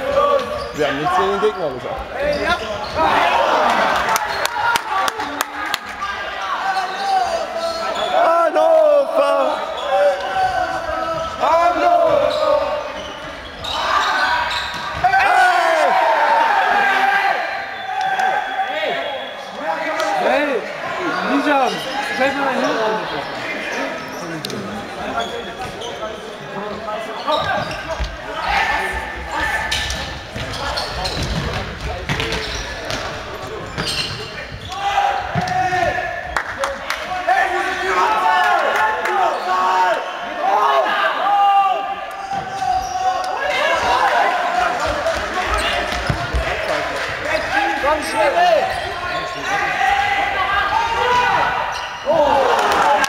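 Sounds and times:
people shouting in echoing hall: 0.0s - 24.4s, 34.6s - 53.0s.

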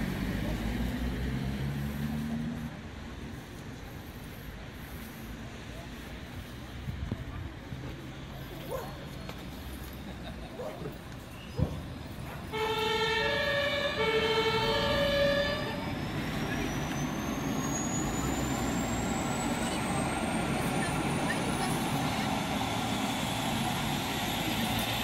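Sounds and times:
two-tone emergency siren: 12.5s - 17.0s.

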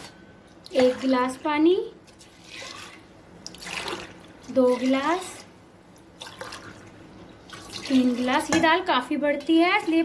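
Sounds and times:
water pouring and splashing: 2.1s - 5.5s, 6.2s - 8.6s.

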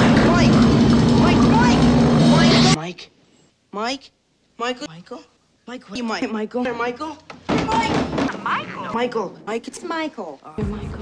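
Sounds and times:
loud droning hum: 0.0s - 2.8s.

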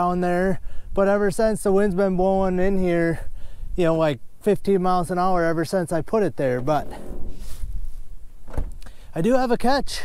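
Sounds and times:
wind buffeting microphone: 0.0s - 8.8s
sharp thump: 6.6s - 7.7s, 8.4s - 8.9s.

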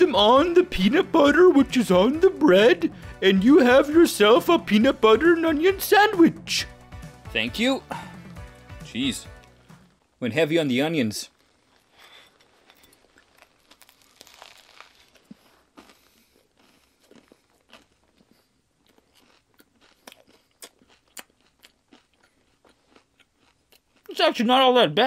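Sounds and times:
crunching while chewing: 11.3s - 24.1s.

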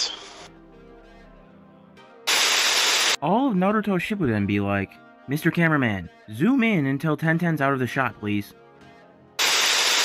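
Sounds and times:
television static hiss: 2.3s - 3.2s.

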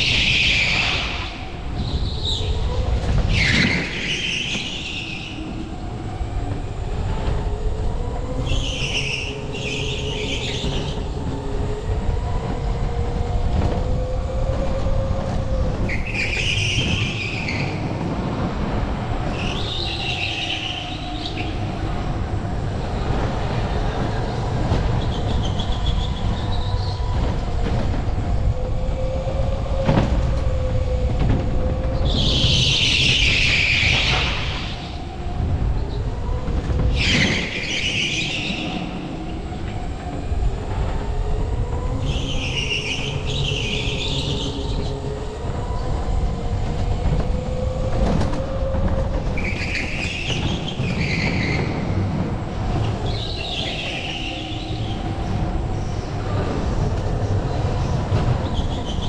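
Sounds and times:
tyre squeal: 3.3s - 5.4s, 49.4s - 52.0s.

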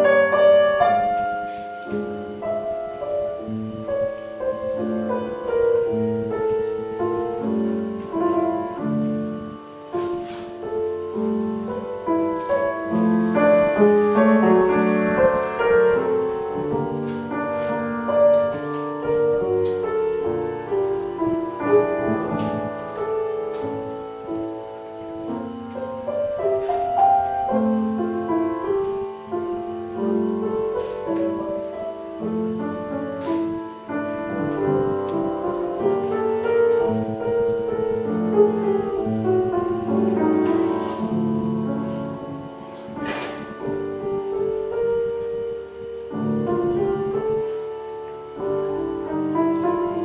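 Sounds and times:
grand piano playing: 0.0s - 50.0s.

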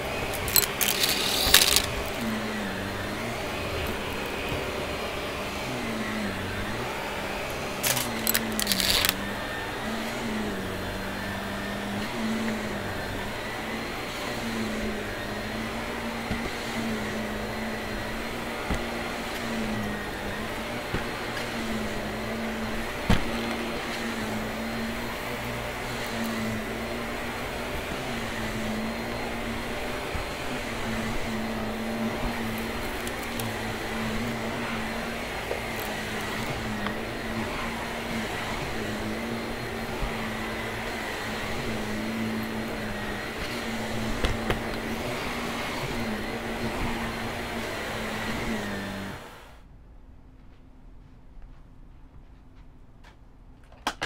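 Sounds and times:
upright vacuum cleaner running: 0.0s - 49.7s.

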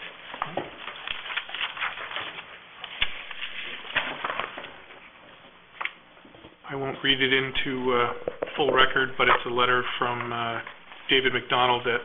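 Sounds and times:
papers rustling: 0.0s - 6.0s.

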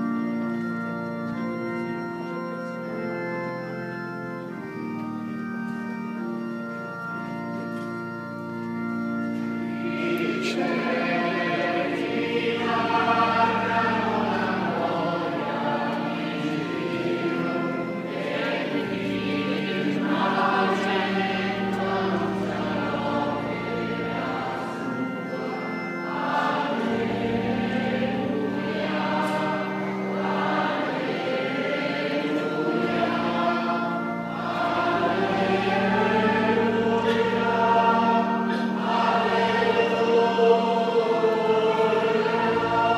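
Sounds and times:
congregation singing a hymn: 0.0s - 42.9s.

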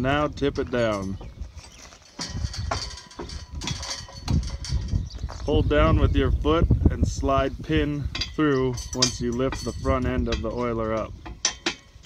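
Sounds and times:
steel frame and chain rattling: 0.0s - 5.4s, 7.8s - 12.0s
wind on microphone: 0.0s - 12.0s.

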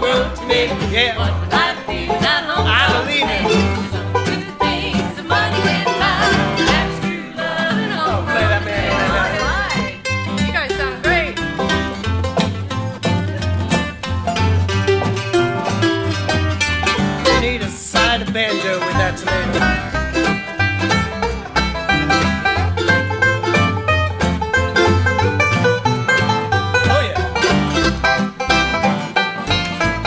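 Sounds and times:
bluegrass string band playing: 0.0s - 30.0s
upright bass pulse: 0.0s - 30.0s.

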